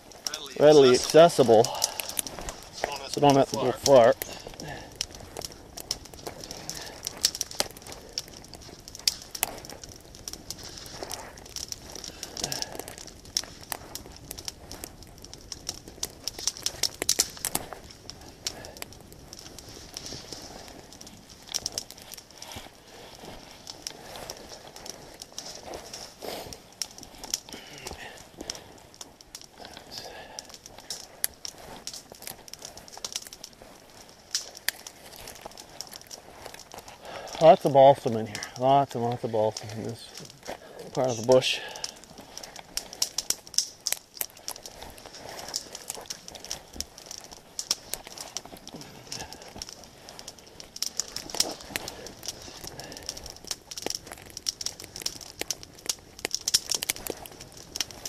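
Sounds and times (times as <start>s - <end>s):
twigs snapping and crackling: 0.0s - 58.0s.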